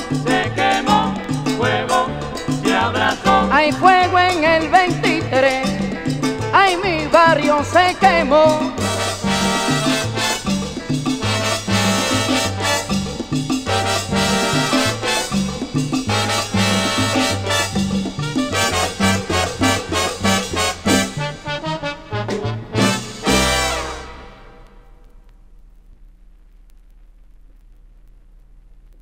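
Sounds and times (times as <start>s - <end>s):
salsa band playing: 0.0s - 24.6s.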